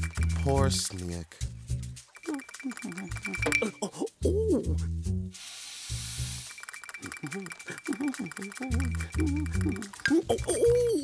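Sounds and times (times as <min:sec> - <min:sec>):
rapid light clicking patter: 0:00.0 - 0:04.2, 0:06.4 - 0:11.0
wavering moaning voice: 0:02.3 - 0:04.9, 0:07.2 - 0:11.0
hiss: 0:05.3 - 0:06.6
thin steady high tone: 0:06.1 - 0:10.9.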